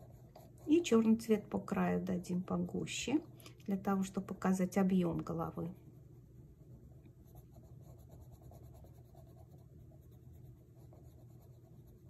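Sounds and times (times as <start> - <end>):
pencil scratching on paper: 0.0 - 1.2, 7.3 - 12.0.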